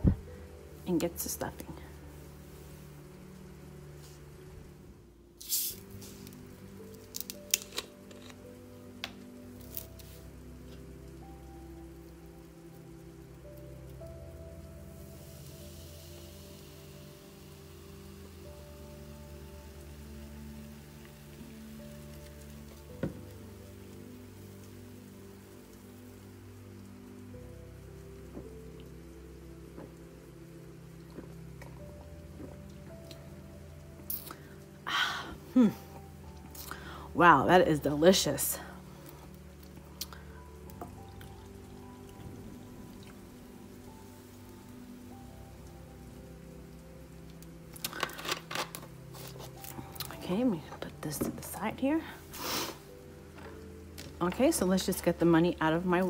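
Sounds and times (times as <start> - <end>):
soft background music: 0.0 - 56.0
sparkling water fizzing into cup: 5.4 - 56.0.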